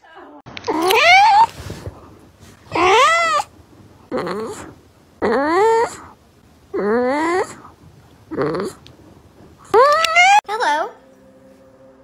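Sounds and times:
cat meowing: 2.7s - 3.5s.

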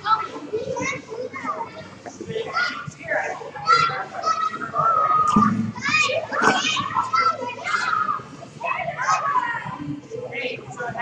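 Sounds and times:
children shouting: 0.0s - 9.8s.

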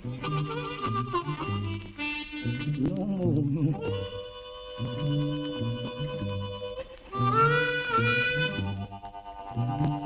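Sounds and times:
low bass notes: 0.0s - 4.2s
harmonica long note: 0.0s - 10.0s.

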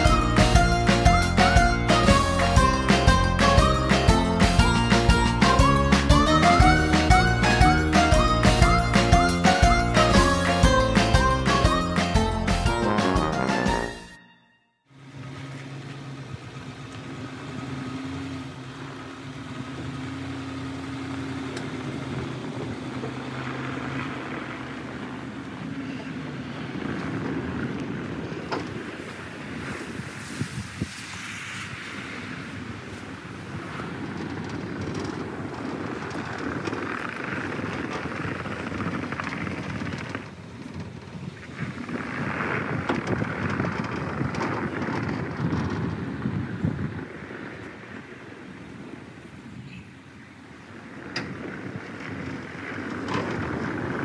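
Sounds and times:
truck engine humming: 0.0s - 29.9s
tyres on packed snow: 14.9s - 54.0s
wind on microphone: 16.2s - 54.0s.

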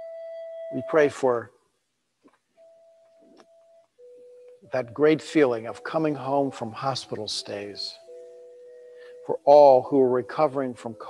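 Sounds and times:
faint background music note: 0.0s - 11.0s.

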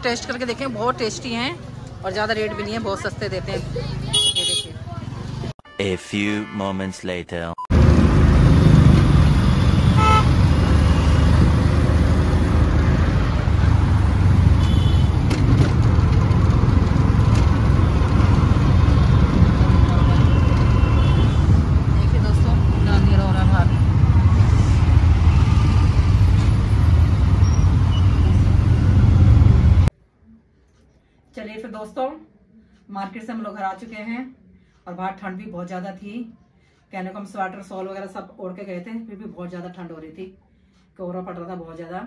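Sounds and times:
traffic and engine rumble: 0.0s - 5.6s, 7.4s - 30.0s
car and motorbike horns honking: 4.1s - 4.9s, 5.7s - 7.0s, 9.3s - 11.4s, 14.4s - 15.3s, 19.0s - 21.9s.

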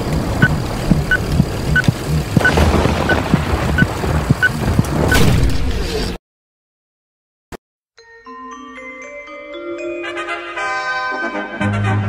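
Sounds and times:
low rumbling backing track: 0.0s - 5.0s.

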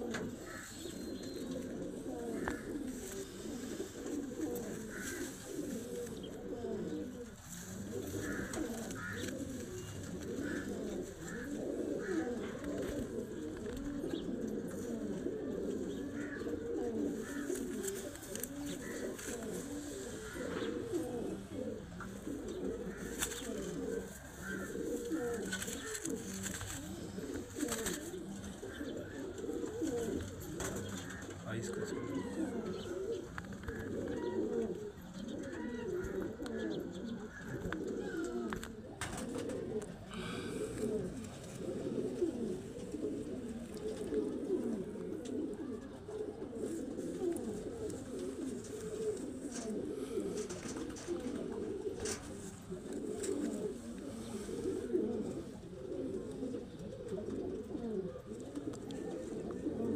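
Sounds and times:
pigeons cooing: 0.0s - 59.9s.

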